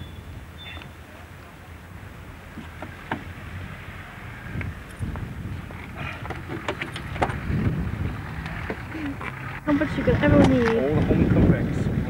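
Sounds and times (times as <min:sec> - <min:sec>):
wind rumble on microphone: 0:01.9 - 0:12.0.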